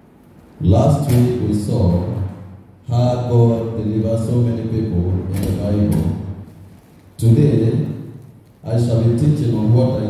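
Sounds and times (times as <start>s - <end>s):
man chanting prayer into microphone: 0.6s - 6.4s, 7.2s - 10.0s.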